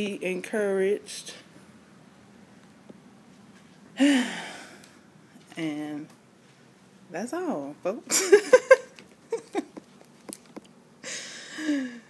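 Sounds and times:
woman laughing: 8.1s - 9.9s.

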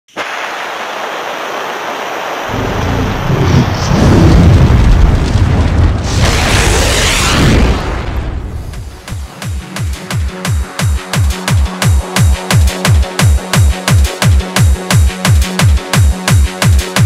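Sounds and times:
deep rumble: 2.5s - 9.2s.

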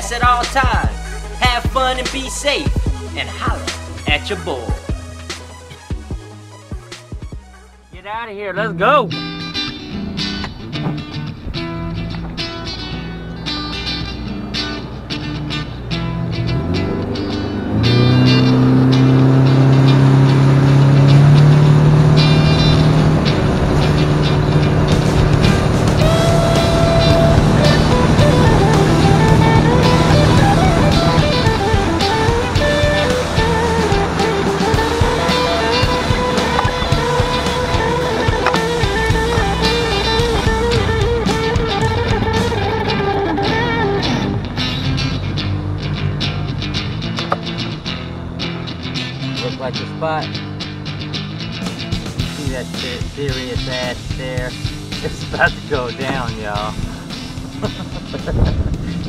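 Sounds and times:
guitar background music: 0.0s - 59.0s
outboard motor running: 16.6s - 44.7s.

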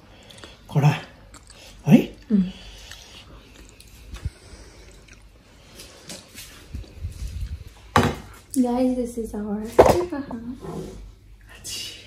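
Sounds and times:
kitchen handling noises: 9.7s - 10.3s.

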